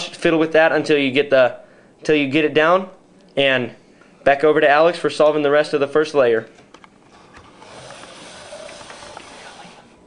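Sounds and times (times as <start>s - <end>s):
steady hiss: 7.1s - 10.0s.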